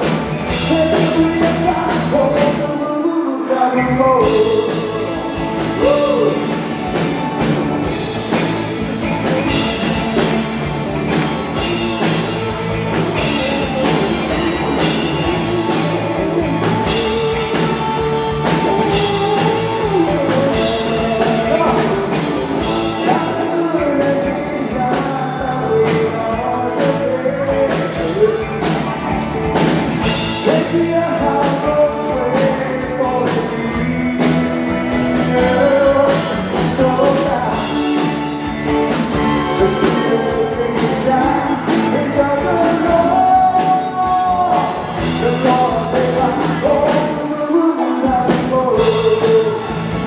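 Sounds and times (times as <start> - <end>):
drum kit beat: 0.0 - 2.7, 4.2 - 50.0
man singing: 0.0 - 29.2, 30.0 - 50.0
electric guitars: 0.0 - 50.0
keyboard: 0.0 - 50.0
live rock band playing: 0.0 - 50.0.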